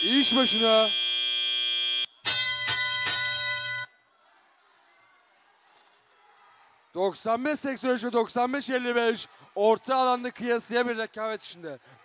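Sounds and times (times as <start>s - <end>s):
steady high electronic tone: 0.0s - 2.1s
chime-like tone: 2.2s - 3.9s.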